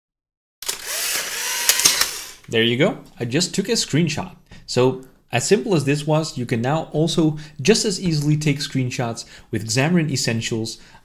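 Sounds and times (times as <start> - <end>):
camera motor whirring: 0.6 - 2.5
camera shutter click: 0.6 - 2.5.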